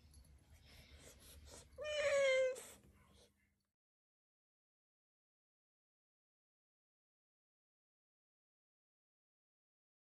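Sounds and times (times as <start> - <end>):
cat meowing: 1.8 - 2.7.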